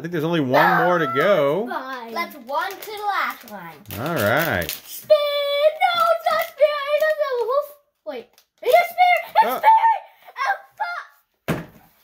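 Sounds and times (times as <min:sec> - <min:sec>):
girls' excited voices: 0:00.5 - 0:03.1, 0:08.6 - 0:11.1
thunk: 0:11.5 - 0:11.9.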